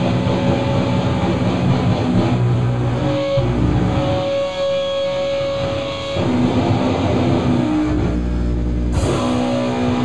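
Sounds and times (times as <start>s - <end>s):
bass guitar: 0.0s - 10.0s
electric guitar: 0.0s - 10.0s.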